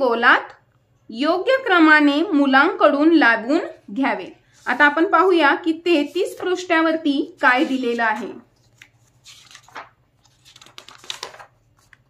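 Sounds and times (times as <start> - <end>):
paper pages flipping: 7.4 - 12.0.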